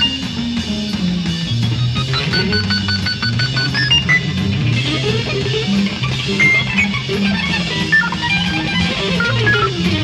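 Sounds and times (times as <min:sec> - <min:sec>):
bass guitar line: 0:00.0 - 0:10.0
drums: 0:00.0 - 0:10.0
guitar: 0:00.0 - 0:10.0.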